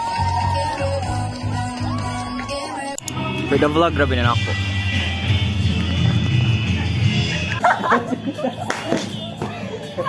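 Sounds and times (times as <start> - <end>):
sharp hand claps: 8.6 - 9.5.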